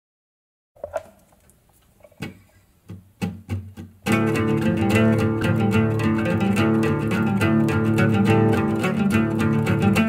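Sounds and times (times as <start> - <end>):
knocks on acoustic guitar: 2.2 - 4.2.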